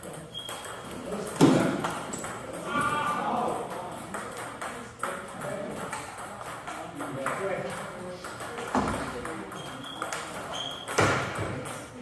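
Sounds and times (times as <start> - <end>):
people talking: 0.9 - 12.0
table tennis ball clicking: 3.6 - 12.0.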